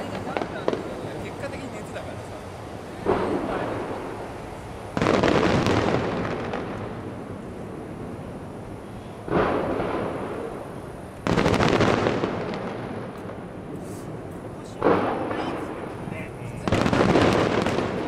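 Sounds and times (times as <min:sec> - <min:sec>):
firework shells booming: 0:00.0 - 0:02.0, 0:03.0 - 0:08.2, 0:09.2 - 0:18.0.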